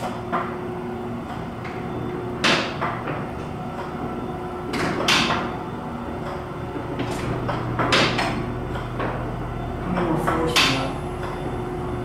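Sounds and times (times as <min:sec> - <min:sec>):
elevator running hum: 0:00.0 - 0:12.0.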